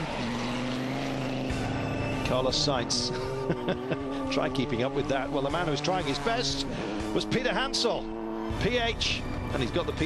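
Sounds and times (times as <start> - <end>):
motor droning: 0.0 - 9.4.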